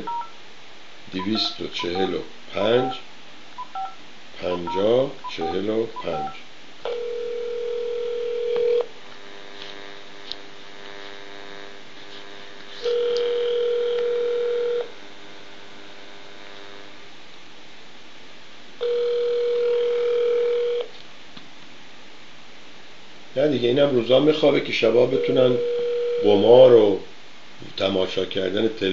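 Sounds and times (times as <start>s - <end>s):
telephone ringback tone: 3.6s - 8.9s, 12.8s - 14.9s, 18.8s - 20.9s, 25.1s - 26.5s.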